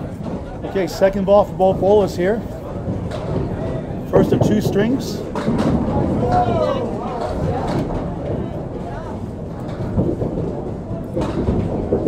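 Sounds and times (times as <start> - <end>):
background voices talking: 0.0 - 11.8
bowling balls rolling on wooden lanes: 0.0 - 12.0.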